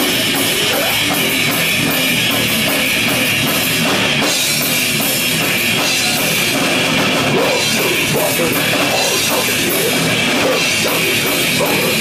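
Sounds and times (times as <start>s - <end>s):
death metal band playing live: 0.0s - 12.0s.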